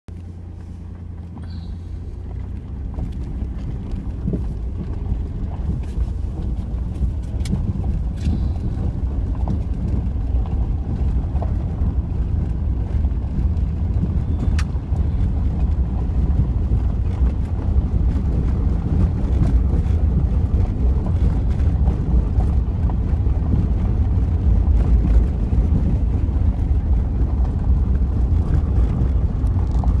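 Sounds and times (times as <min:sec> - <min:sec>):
vehicle engine rumble: 0:00.1 - 0:30.0.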